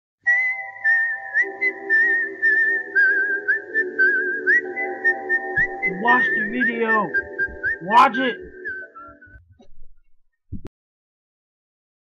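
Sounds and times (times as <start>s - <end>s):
whistled melody: 0.2s - 9.6s
held chords: 3.7s - 9.6s.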